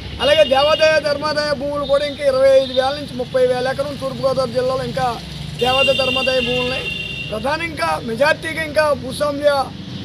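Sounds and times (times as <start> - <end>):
man speaking: 0.2 - 9.8.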